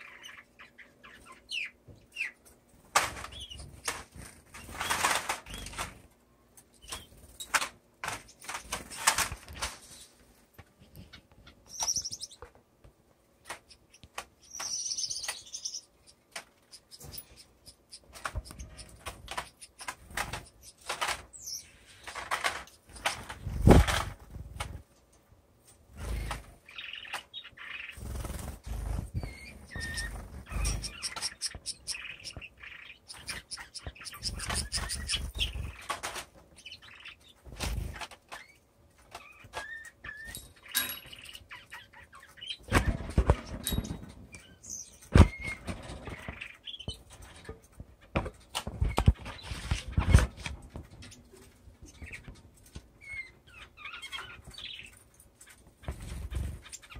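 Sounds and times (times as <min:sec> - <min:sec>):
small birds chirping: 0:00.0 - 0:12.7, 0:13.3 - 0:24.9, 0:25.8 - 0:56.9.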